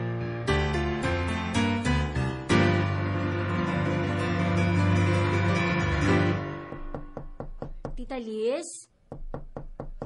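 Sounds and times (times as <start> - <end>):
knocking on a door: 6.7 - 8.1, 9.1 - 10.0.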